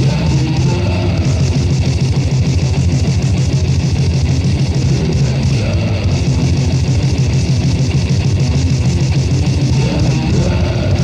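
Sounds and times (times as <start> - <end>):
distorted electric guitar metal music: 0.0 - 11.0.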